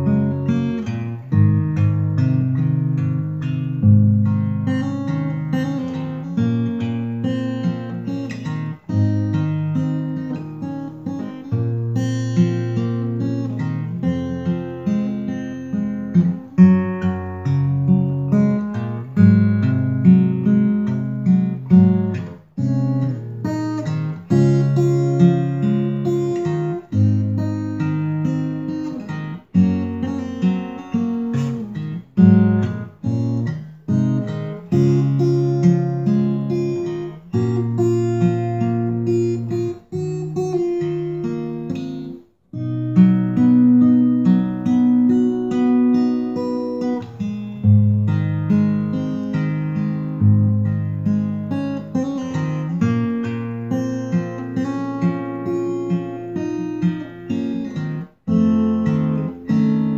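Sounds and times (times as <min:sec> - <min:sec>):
acoustic guitar picking chords: 0:00.0 - 0:59.9.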